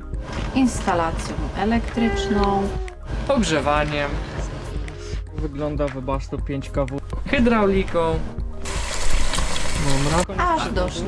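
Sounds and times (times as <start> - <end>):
tap water splashing into basin: 8.6 - 10.2.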